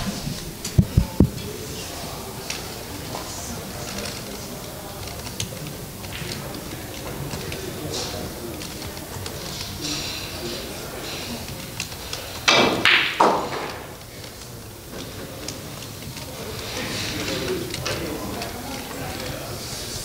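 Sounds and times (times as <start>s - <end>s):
low room noise: 0.0s - 20.0s
pool balls knocking: 12.4s - 14.3s.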